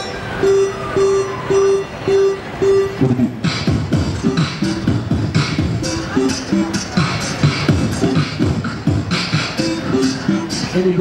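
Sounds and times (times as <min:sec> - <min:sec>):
beatboxing into microphone: 0:02.9 - 0:11.0.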